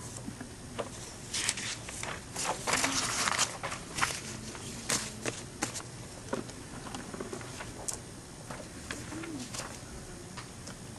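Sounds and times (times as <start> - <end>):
faint low hum: 0.0 - 10.9
paper rustling and tapping: 0.8 - 9.8.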